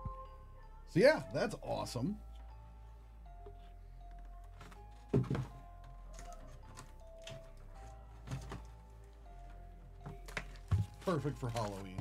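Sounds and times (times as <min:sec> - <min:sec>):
background music: 0:00.0 - 0:12.0
cardboard box thunks: 0:05.1 - 0:05.6, 0:10.2 - 0:11.2.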